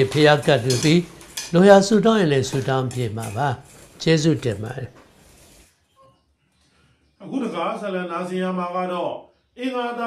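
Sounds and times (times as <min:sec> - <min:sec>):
man speaking: 0:00.0 - 0:04.9.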